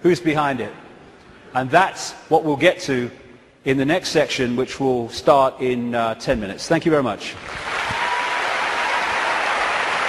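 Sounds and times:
audience applauding: 7.4 - 10.0.

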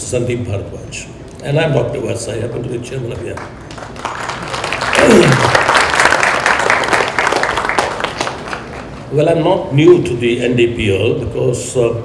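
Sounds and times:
audience applauding: 3.3 - 9.0.

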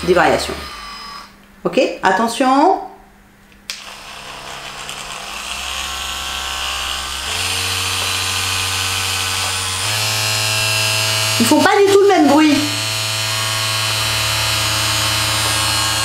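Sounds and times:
vibrator buzzing: 3.7 - 16.0.

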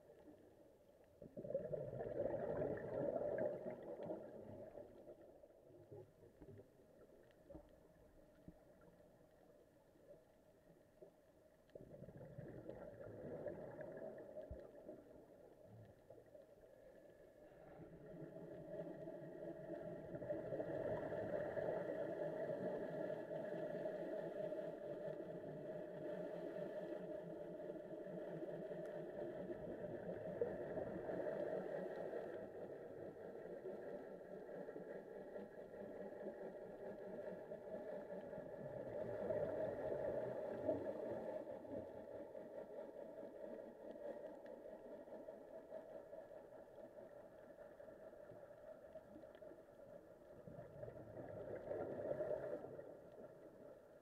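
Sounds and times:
boat engine drone underwater: 0.0 - 54.0.

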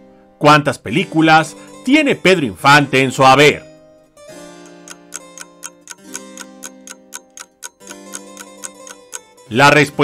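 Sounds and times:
sustained music chords: 4.2 - 9.5
clock-like ticking: 4.6 - 9.4.

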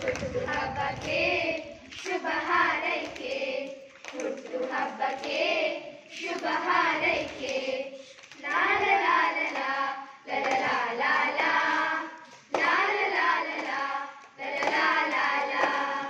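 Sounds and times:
children singing: 0.0 - 16.0
hands clapping: 0.0 - 16.0.

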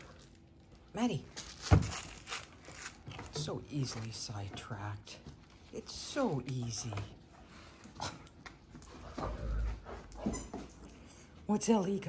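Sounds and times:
plush toys rustling: 0.0 - 7.3.

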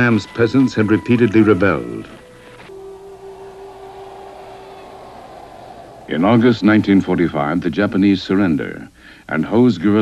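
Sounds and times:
faint hiss: 1.0 - 10.0
sustained musical tone: 2.4 - 7.7.

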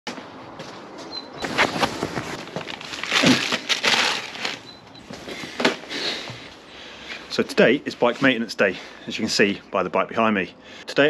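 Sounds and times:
plastic bag crinkling: 1.4 - 4.7.

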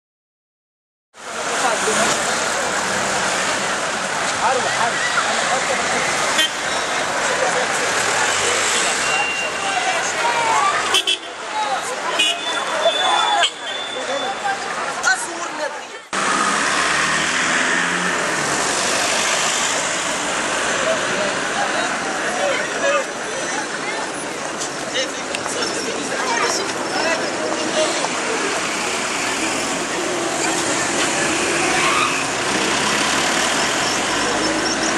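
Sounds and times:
road traffic: 1.1 - 34.9
people's voices: 1.2 - 16.3, 18.1 - 34.9.

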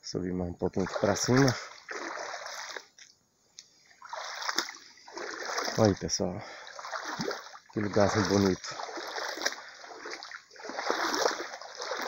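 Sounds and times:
water splashing from wading: 0.7 - 3.1, 3.8 - 12.0.

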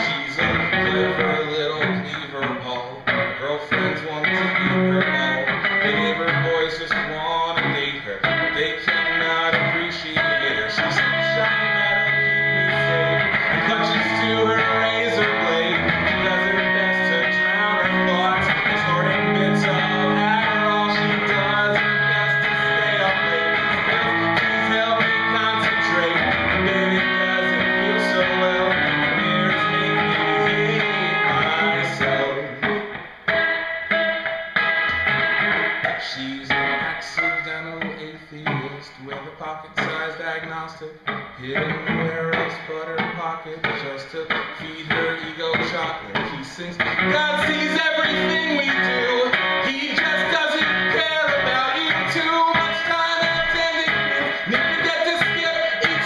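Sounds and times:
electric guitar strummed chords: 0.0 - 56.0.

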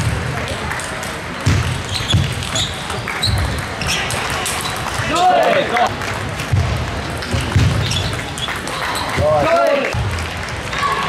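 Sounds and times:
shoe squeaks: 1.9 - 4.9, 7.8 - 9.3.

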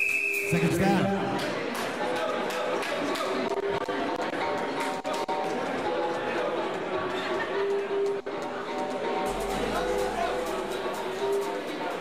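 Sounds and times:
crowd chatter: 0.5 - 12.0.

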